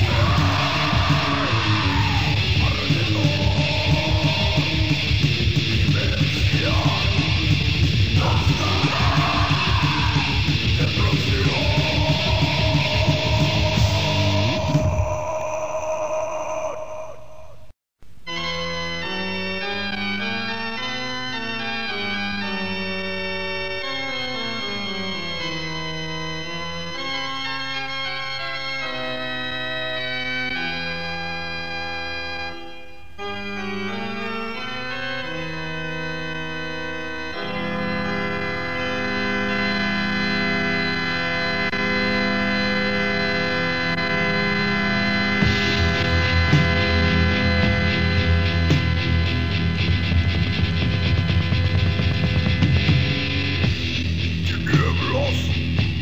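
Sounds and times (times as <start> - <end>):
distorted electric guitar chord: 0.0 - 15.0, 37.6 - 56.0.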